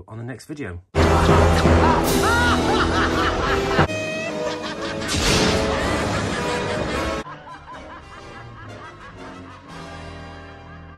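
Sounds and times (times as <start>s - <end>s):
cackling laugh: 1.0s - 10.9s
orchestral film music: 1.0s - 10.9s.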